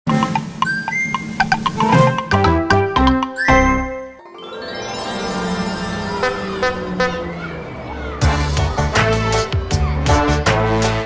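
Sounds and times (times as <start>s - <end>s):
bright chiming jingle: 3.4s - 7.5s.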